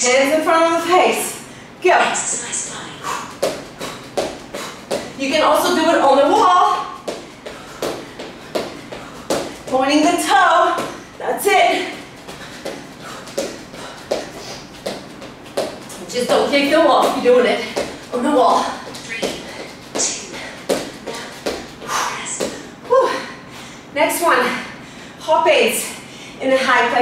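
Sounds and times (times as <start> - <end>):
woman talking: 0.0 - 3.3, 5.2 - 7.0, 9.7 - 12.0, 16.0 - 21.4, 22.0 - 23.4, 24.0 - 27.0.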